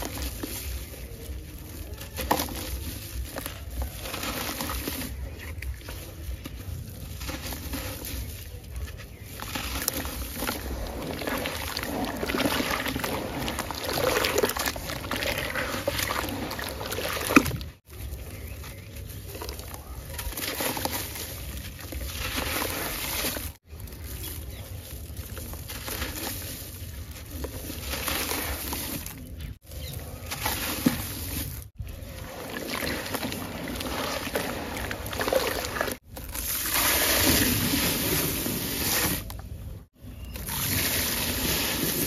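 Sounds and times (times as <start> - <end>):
hands sloshing through gritty water: 0.0 - 42.0
wet grit crackling: 0.0 - 42.0.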